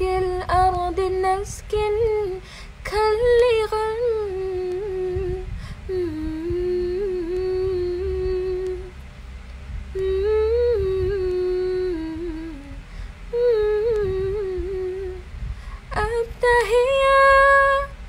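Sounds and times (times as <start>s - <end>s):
woman humming: 10.0s - 15.2s.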